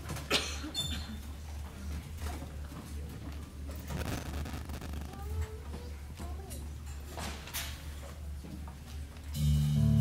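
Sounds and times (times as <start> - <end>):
faint audience murmur: 0.0 - 10.0.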